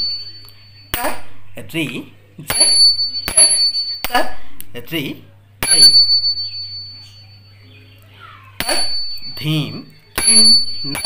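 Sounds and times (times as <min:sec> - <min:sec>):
hand cymbals ringing: 0:00.0 - 0:01.4, 0:02.5 - 0:04.2, 0:05.6 - 0:07.7, 0:08.6 - 0:11.0.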